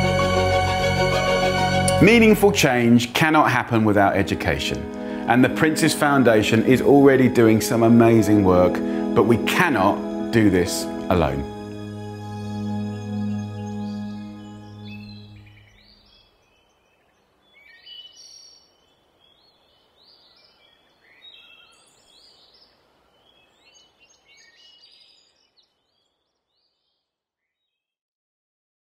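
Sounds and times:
background music: 0.0 - 15.7
birds singing and chirping: 12.8 - 26.1.

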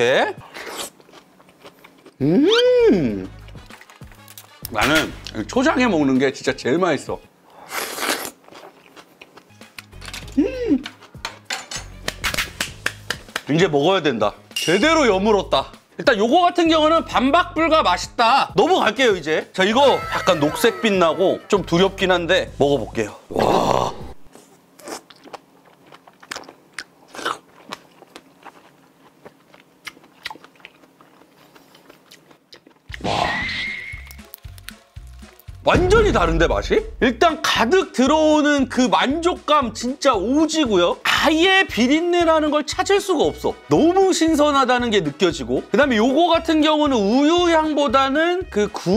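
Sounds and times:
person clapping hands: 12.0 - 13.5
wet chewing clicks and smacks: 25.0 - 33.0.

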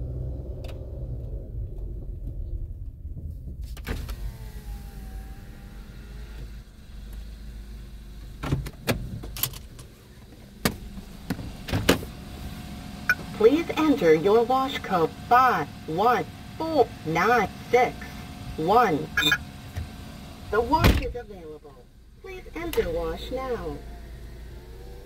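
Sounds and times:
car engine idling: 0.0 - 25.0
power window motor: 3.6 - 21.1, 22.6 - 25.0.

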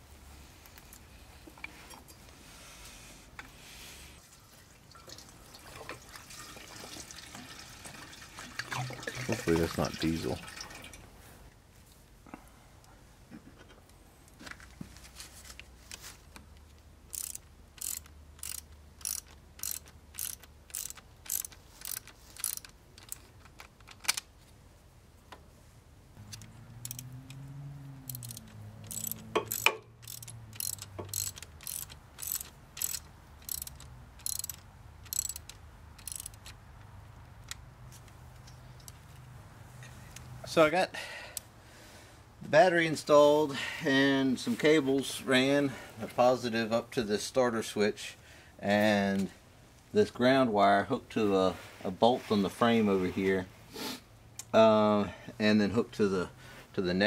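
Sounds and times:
ratchet wrench clicking: 17.0 - 23.3, 26.3 - 27.4, 28.0 - 36.6.

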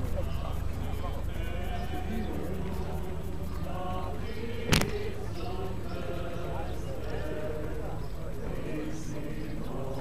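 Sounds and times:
procession singing a hymn: 0.0 - 10.0.

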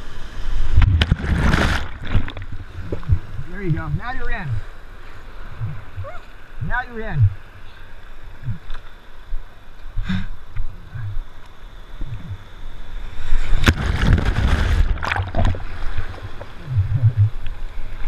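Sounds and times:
surf sloshing and churning: 0.0 - 18.0
underwater rushing wash: 0.0 - 18.0.

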